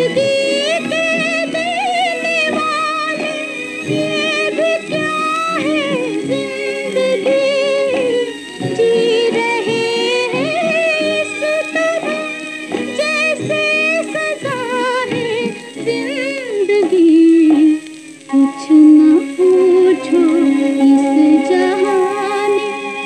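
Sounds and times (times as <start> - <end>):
instrumental accompaniment: 0.0 - 23.0
woman singing with vibrato: 0.0 - 23.0.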